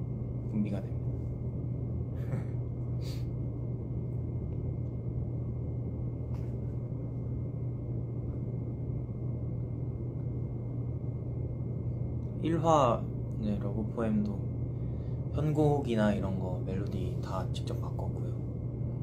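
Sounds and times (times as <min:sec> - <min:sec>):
low room hum and rumble: 0:00.0 - 0:19.0.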